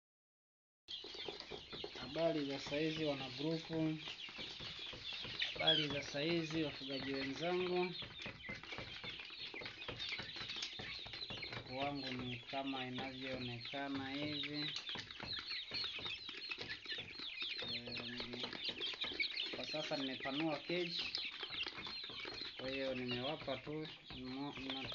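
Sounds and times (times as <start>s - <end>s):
chickens chirping and clucking: 0.9s - 24.9s.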